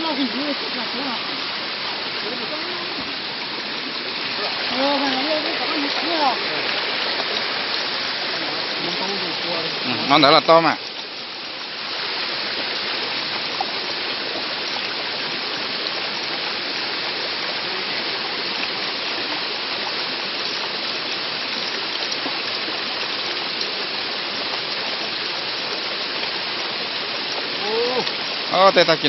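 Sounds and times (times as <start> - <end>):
rushing water: 0.0 - 29.0.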